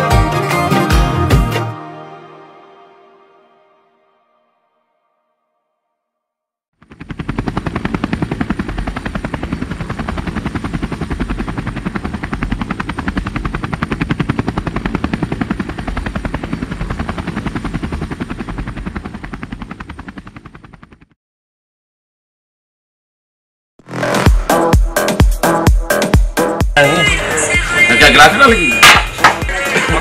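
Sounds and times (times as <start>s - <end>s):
helicopter rotor chopping: 6.8s - 21.2s.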